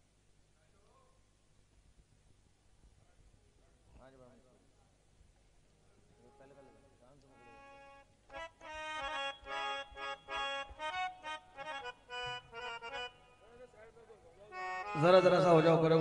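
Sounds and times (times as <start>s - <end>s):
harmonium melody: 6.2s - 16.0s.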